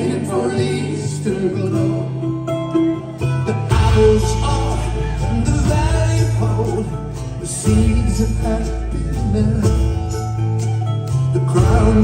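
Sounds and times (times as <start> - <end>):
live folk-rock band playing: 0.0 - 12.0.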